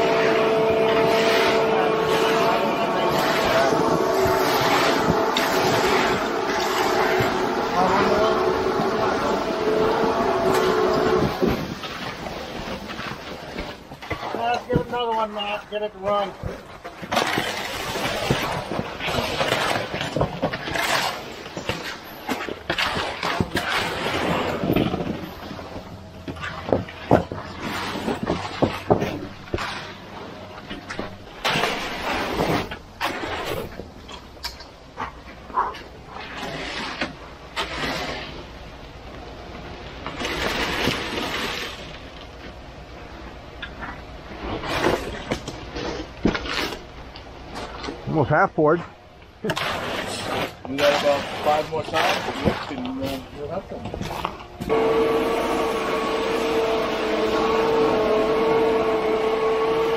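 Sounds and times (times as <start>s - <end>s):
wet concrete scraping: 0.0s - 59.9s.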